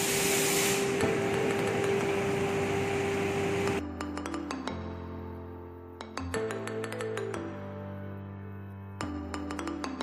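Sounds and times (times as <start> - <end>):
machine humming: 0.1 - 3.8.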